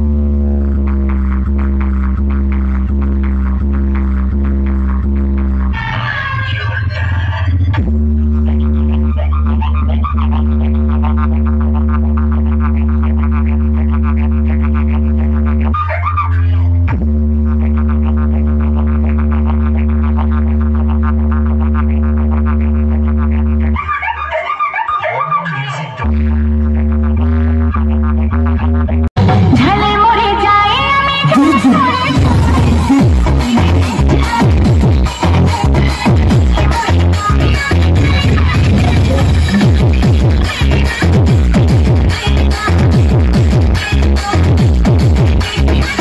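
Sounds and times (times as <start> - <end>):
electronic music with buzzing bass: 0.0 - 46.0.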